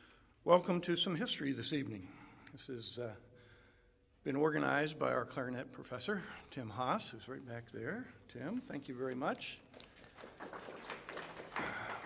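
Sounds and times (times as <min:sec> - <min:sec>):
audience applause: 0:09.7 - 0:12.0.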